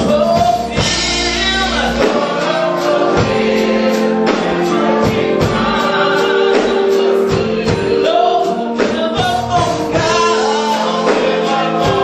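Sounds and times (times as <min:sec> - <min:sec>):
drums keeping a steady beat: 0:00.0 - 0:12.0
gospel choir singing: 0:00.0 - 0:12.0
live band: 0:00.0 - 0:12.0.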